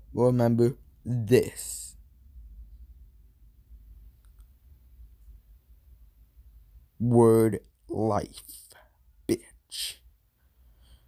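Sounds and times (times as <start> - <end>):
low hum: 0.0 - 8.3.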